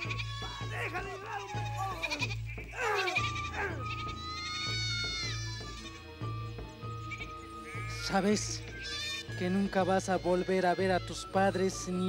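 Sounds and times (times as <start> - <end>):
sheep bleating: 0.0 - 11.4
background music with low drone: 0.0 - 12.0.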